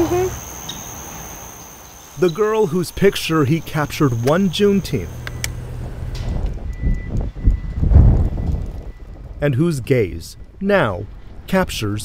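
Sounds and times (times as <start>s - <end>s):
high warning alarm tone: 2.2s - 9.2s.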